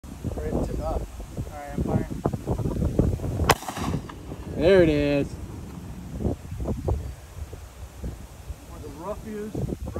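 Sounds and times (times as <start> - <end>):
rifle gunshot with echo: 3.4 - 4.3.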